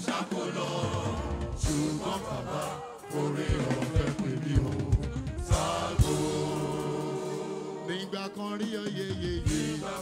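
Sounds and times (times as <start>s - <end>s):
choir singing gospel music: 0.0s - 10.0s.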